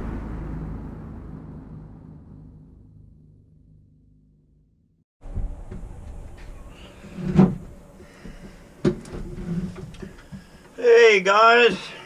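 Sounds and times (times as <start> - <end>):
low rumbling cinematic boom: 0.0 - 6.7.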